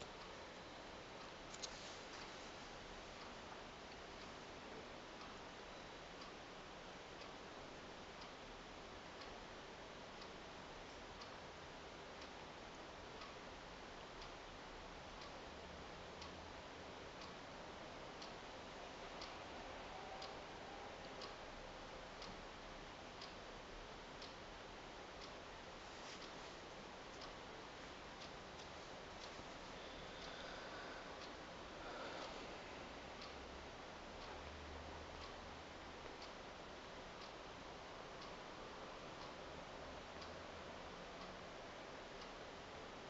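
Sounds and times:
clock ticking faintly: 0.0s - 43.0s
room hiss: 0.0s - 43.0s.

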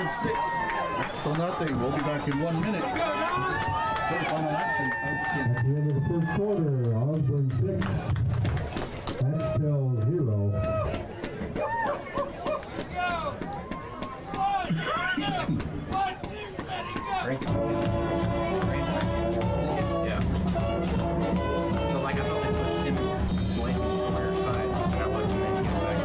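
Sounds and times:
crowd calling and shouting: 0.0s - 26.0s
music with steady beat: 17.4s - 26.0s.

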